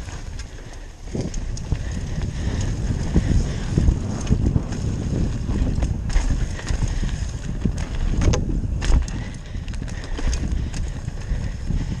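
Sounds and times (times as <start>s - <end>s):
bike chain and frame rattling: 0.0s - 12.0s
tyres on dirt: 0.0s - 12.0s
wind on microphone: 0.0s - 12.0s.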